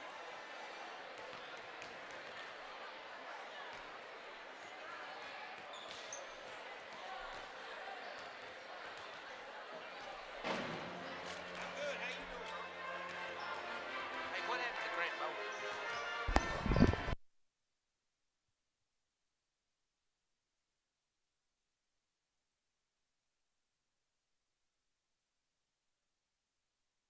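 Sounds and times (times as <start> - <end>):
crowd chatter: 0.0 - 17.2.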